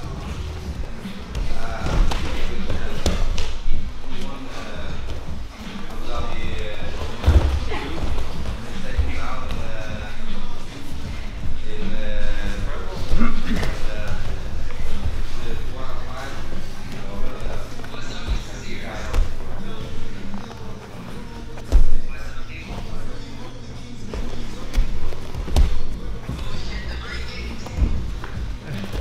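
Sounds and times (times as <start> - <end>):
background music: 0.0 - 29.0
voices: 0.0 - 29.0
bodies thumping on gym mats: 7.0 - 9.6, 24.1 - 26.7, 27.6 - 29.0.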